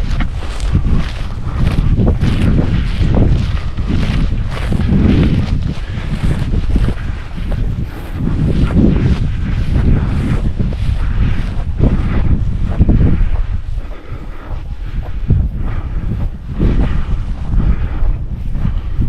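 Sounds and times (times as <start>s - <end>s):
footsteps through dry grass: 0.0s - 19.0s
wind buffeting microphone: 0.0s - 19.0s.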